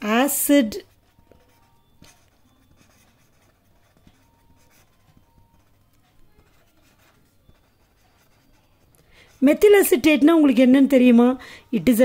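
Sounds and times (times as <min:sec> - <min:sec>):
marker pen scratching on paper: 0:00.0 - 0:10.2.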